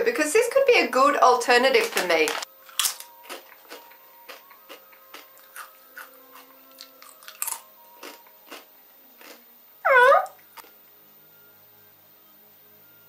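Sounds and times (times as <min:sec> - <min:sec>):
person chewing crisps: 0:01.8 - 0:09.4.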